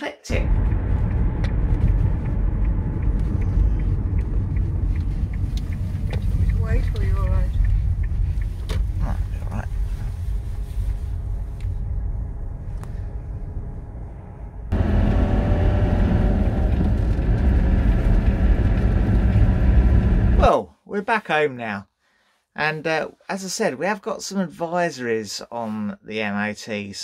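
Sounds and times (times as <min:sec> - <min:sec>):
engine drone hum: 0:00.3 - 0:20.4
car road noise rumble: 0:00.3 - 0:20.5.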